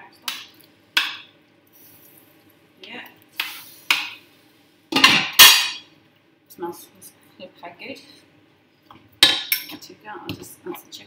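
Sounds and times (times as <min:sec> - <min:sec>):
utensils clinking against a pan: 0:05.0 - 0:05.9, 0:09.2 - 0:09.8.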